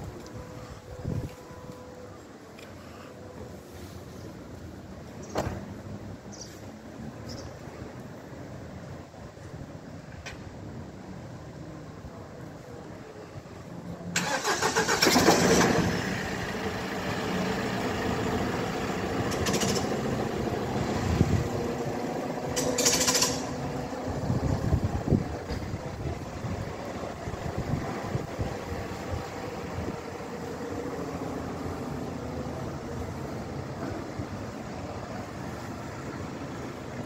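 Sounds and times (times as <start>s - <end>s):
vehicle engine starting and running: 14.1s - 37.0s.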